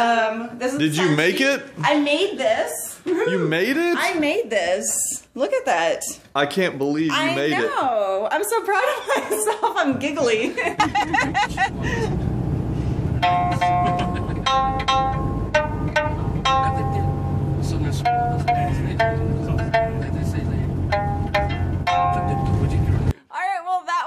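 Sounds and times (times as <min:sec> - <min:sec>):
low rumble inside a van: 0:10.8 - 0:23.2
plucked lute notes: 0:11.7 - 0:23.1.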